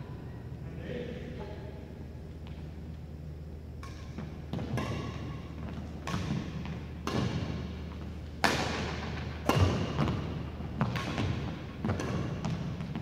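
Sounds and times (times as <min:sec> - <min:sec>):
rackets hitting shuttlecock: 0:03.8 - 0:13.0.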